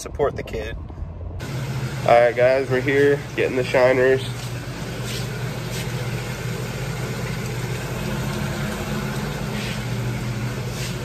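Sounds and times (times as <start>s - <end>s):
machinery humming: 1.3s - 11.0s.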